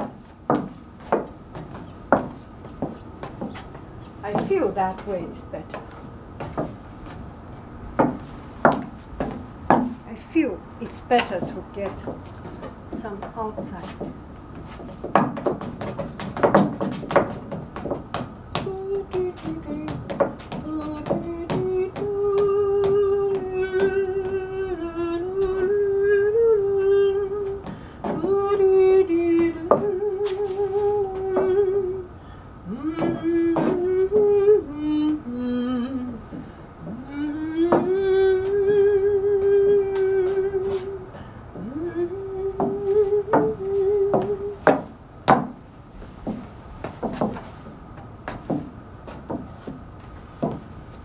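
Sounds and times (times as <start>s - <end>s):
woman humming: 18.6s - 20.0s, 20.6s - 44.7s.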